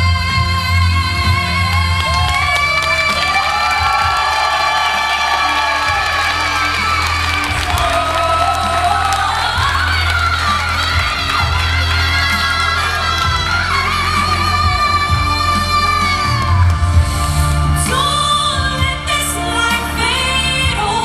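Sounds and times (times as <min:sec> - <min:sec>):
woman singing into a microphone: 0:00.0 - 0:04.4, 0:05.4 - 0:17.0, 0:17.6 - 0:21.0
backing music with steady bass: 0:00.0 - 0:21.0
audience cheering and whooping: 0:01.6 - 0:17.2.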